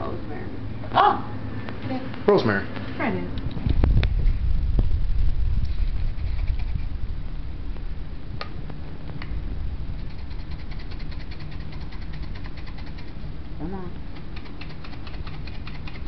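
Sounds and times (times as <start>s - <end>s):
steady low rumble: 0.0s - 16.0s
dry herbs ticking: 10.0s - 13.2s, 14.0s - 16.0s.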